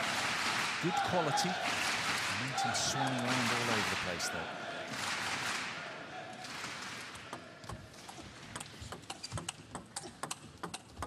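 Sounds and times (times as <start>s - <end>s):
table tennis ball clicks: 8.5s - 11.0s.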